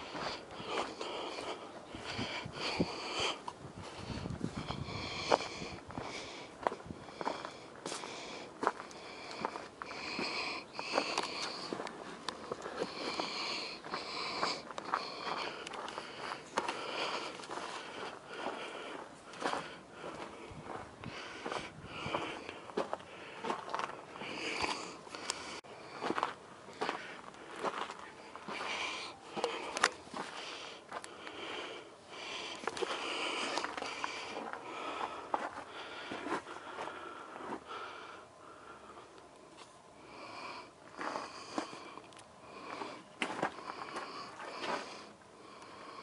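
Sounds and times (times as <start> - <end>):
footsteps on gravel: 0.0 - 38.0, 40.9 - 41.9, 42.5 - 45.1
close quick breathing: 0.0 - 39.2.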